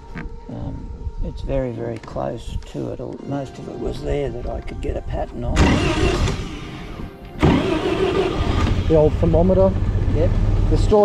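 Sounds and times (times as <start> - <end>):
car engine starting and running: 5.5 - 11.0.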